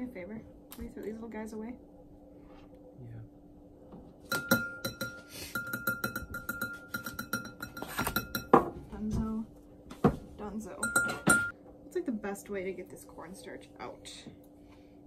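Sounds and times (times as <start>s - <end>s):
metal spoon clinking glass bowl: 4.3s - 8.6s, 10.8s - 11.5s.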